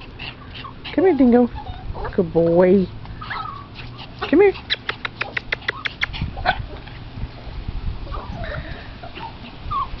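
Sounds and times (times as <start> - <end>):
small dogs whimpering and yipping: 0.0 - 7.1, 8.0 - 10.0.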